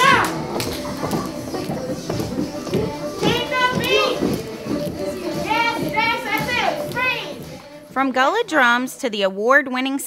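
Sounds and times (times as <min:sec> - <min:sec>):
children calling out: 0:00.0 - 0:00.4
children jumping and moving: 0:00.0 - 0:08.0
faint music: 0:00.0 - 0:10.0.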